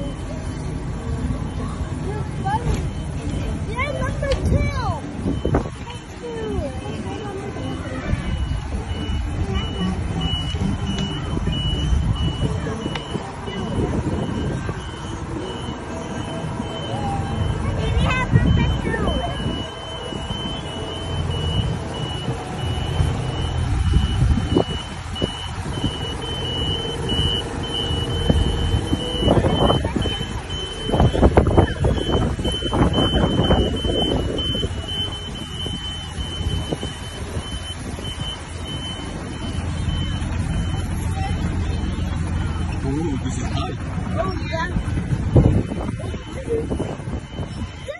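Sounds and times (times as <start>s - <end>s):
reversing alarm beeping: 0.0s - 47.9s.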